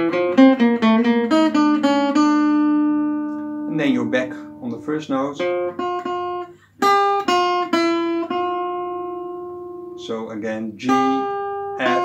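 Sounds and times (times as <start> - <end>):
acoustic guitar picking notes: 0.0 - 12.0.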